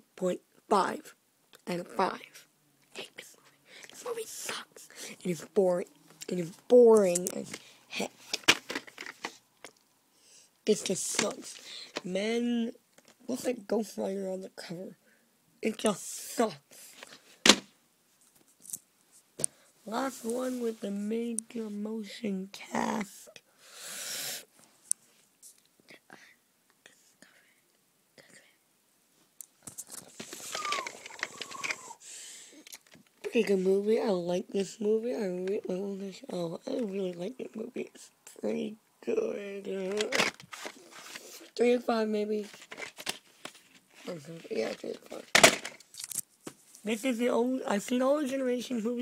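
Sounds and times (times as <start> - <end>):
person whispering: 0.2 - 8.2, 19.8 - 23.4, 25.8 - 28.6, 30.4 - 32.1, 44.0 - 45.3
faint whispered sounds: 2.2 - 8.2, 24.8 - 28.6.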